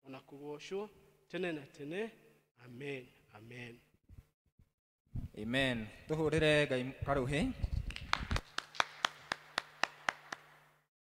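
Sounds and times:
hand claps: 7.8 - 10.8.

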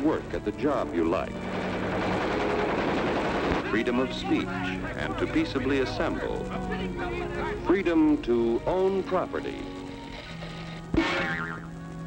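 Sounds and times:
cartoon hit with wobbling pitch: 11.0 - 11.7.

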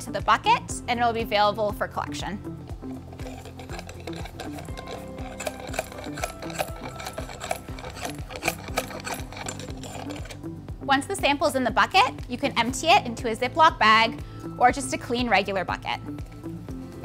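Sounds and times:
background music: 0.0 - 17.0
dry hay scraping in metal probe: 2.9 - 10.5.

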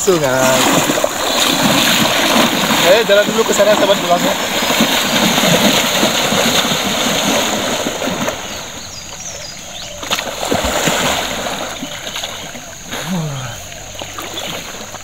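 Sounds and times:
water splashing from wading: 0.0 - 15.0.

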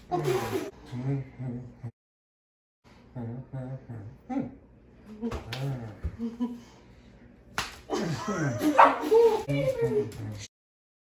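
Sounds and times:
tortilla slap on face: 7.6 - 7.9.

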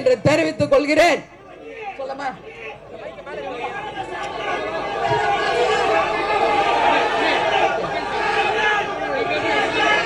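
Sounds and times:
crowd chatter: 0.0 - 10.0.

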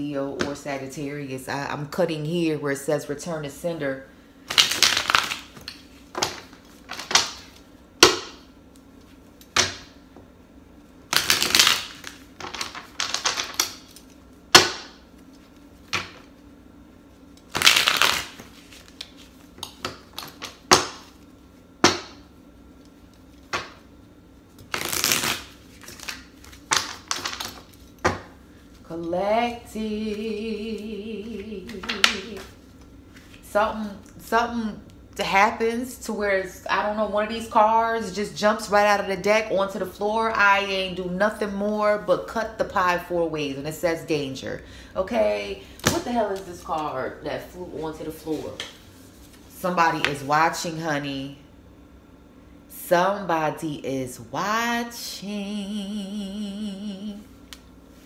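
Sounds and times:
cards being shuffled: 17.5 - 20.6
person humming: 55.2 - 57.2.

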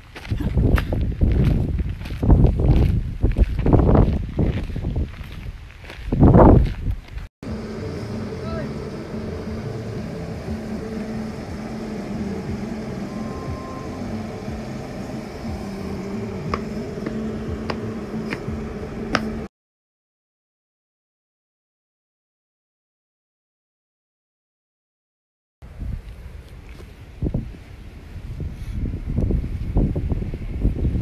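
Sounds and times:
wind buffeting microphone: 0.0 - 19.5, 25.6 - 31.0
steady hum with low tones: 7.4 - 19.5.

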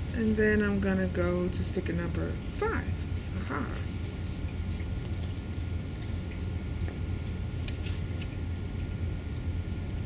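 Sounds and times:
low room hum: 0.0 - 10.0
paper sticker being peeled: 7.6 - 8.4.

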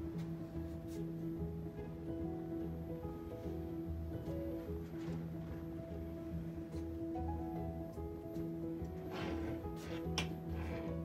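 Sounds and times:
music with held tones and beat: 0.0 - 9.1.

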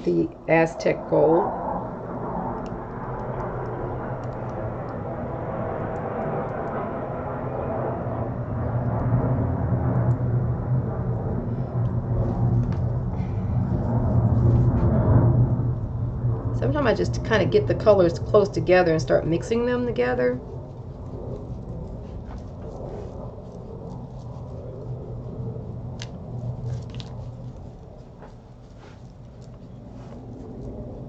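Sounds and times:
low rumble with hum: 0.0 - 31.0.

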